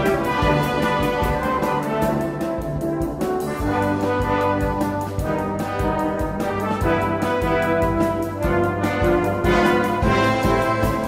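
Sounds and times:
brass band playing hymn tune: 0.0 - 11.0.

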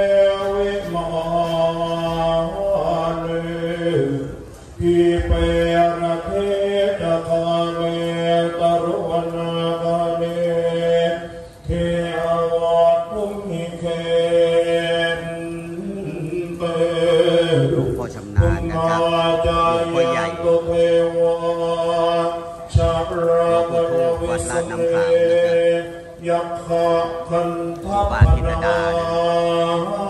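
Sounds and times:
monks chanting in unison: 0.0 - 30.0.

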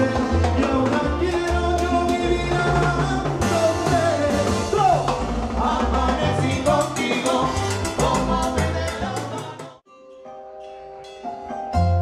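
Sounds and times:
bass: 0.0 - 9.8, 11.1 - 12.0
man singing: 0.0 - 9.8
congas and timbales: 0.0 - 12.0
piano: 0.0 - 12.0.

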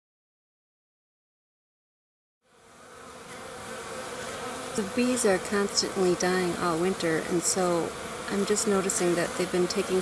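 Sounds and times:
honey bees buzzing: 2.4 - 10.0.

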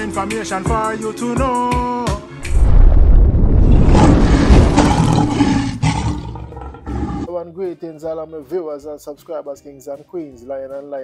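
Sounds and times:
lion roar: 2.5 - 7.3.

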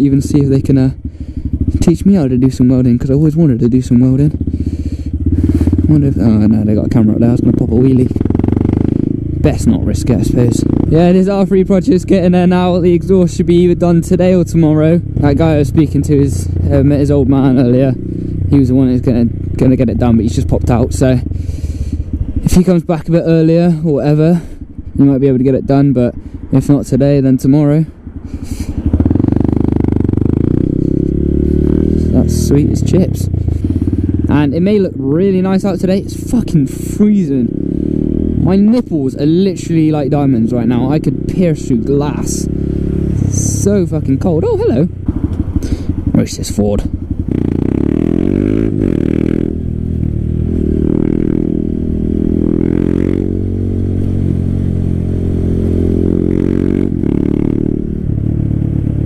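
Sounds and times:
motorcycle engine revving away: 0.0 - 59.0.

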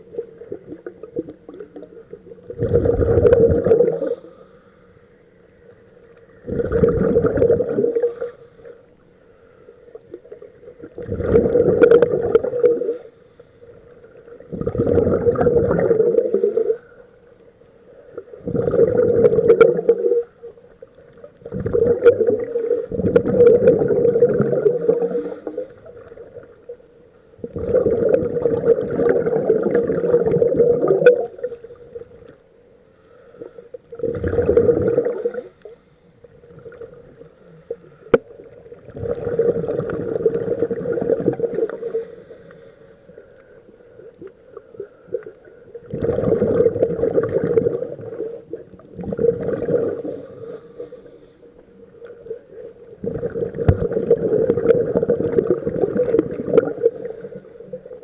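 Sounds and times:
underwater air bubbling: 0.0 - 5.0, 5.7 - 9.1, 9.7 - 32.5, 33.1 - 58.0.

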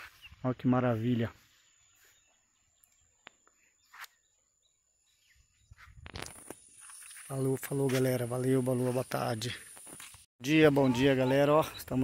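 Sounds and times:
faint bird chirps: 0.0 - 7.4.

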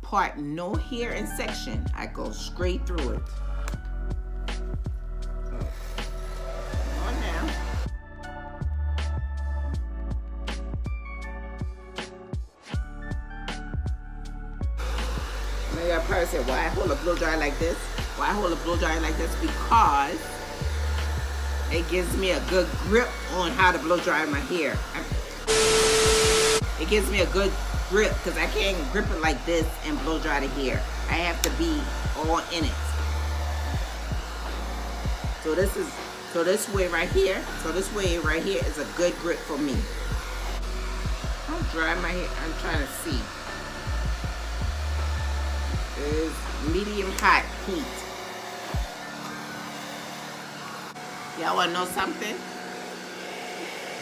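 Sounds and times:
hair dryer blowing: 0.6 - 8.4, 14.6 - 54.0.

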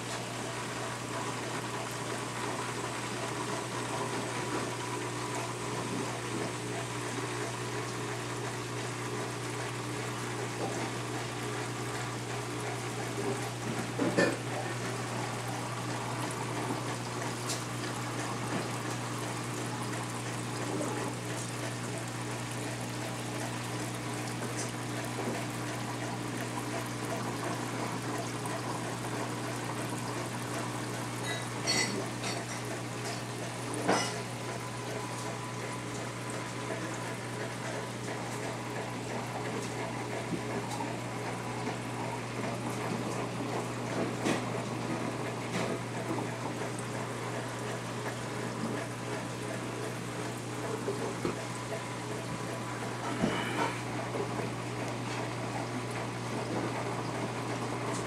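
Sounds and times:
low pump hum: 0.0 - 58.0
water bubbling and trickling: 5.6 - 53.1.

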